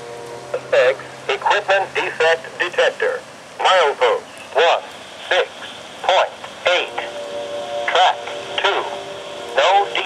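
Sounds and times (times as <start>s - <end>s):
automated voice over radio: 0.8s - 7.1s.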